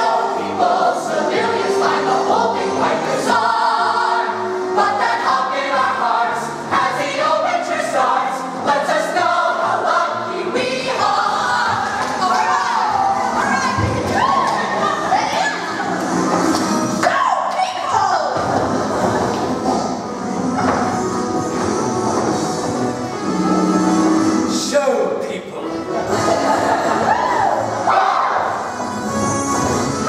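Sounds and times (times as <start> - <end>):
group of teenagers singing: 0.0 - 16.8, 25.9 - 30.0.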